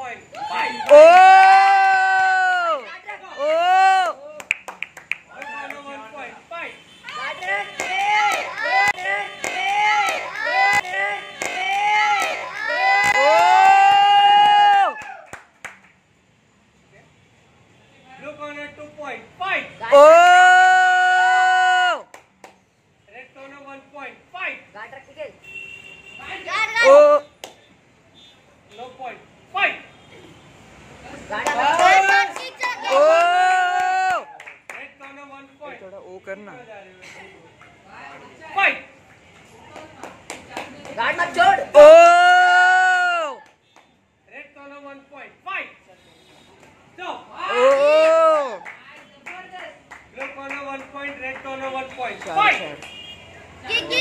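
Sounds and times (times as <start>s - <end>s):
children chanting shouts: 7.1s - 13.2s.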